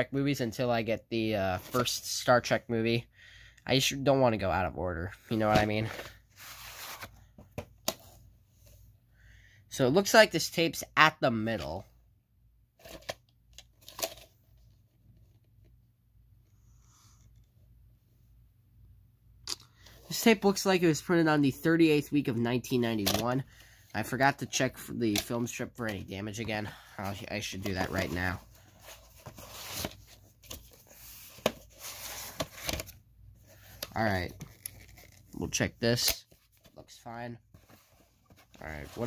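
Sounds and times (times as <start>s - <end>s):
faint rustling handling noises: 21.9s - 39.0s.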